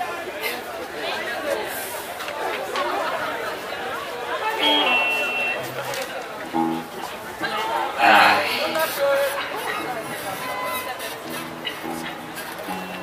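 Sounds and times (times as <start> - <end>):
crowd chatter: 0.0 - 13.0
held instrument note: 4.6 - 7.0.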